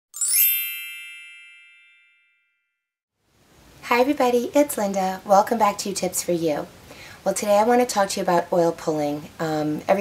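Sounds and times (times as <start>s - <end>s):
bright bell-like chime: 0.1s - 2.9s.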